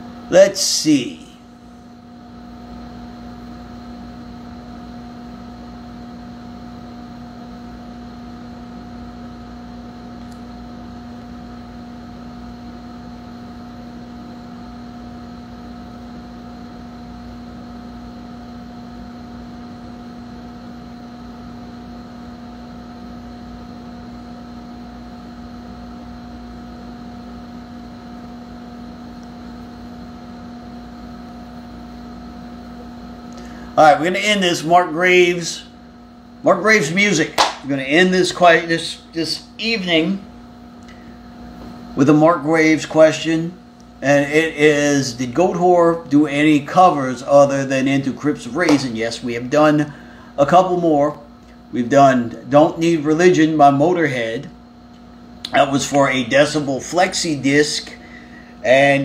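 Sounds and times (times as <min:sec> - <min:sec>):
equipment hum: 0:00.0 - 0:59.0.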